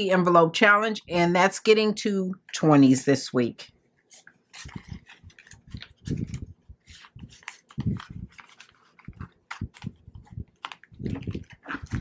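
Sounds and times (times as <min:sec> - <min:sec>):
plastic envelope crinkling: 0:04.1 - 0:12.0.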